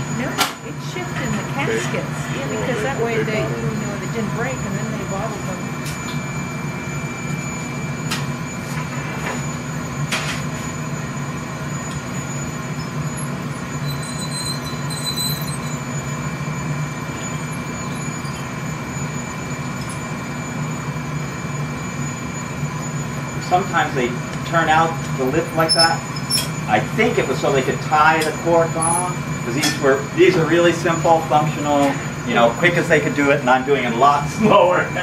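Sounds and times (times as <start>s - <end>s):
furnace burner roaring hum: 0.0s - 35.0s
thin high whine: 0.0s - 35.0s.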